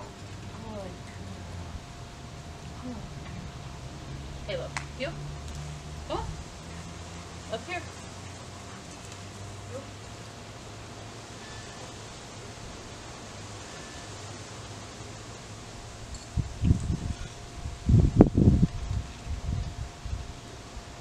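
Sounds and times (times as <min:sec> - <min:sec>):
wind buffeting the microphone: 0:00.0 - 0:09.6, 0:15.8 - 0:21.0.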